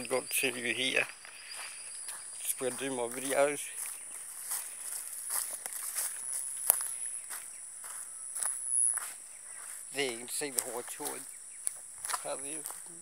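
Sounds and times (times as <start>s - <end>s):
footsteps through grass: 0.0s - 13.0s.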